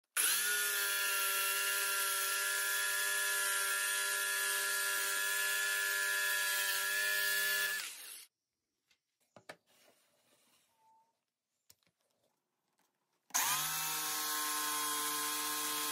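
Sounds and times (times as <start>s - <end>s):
electric jigsaw cutting wood: 0.1s - 8.3s, 13.3s - 15.9s.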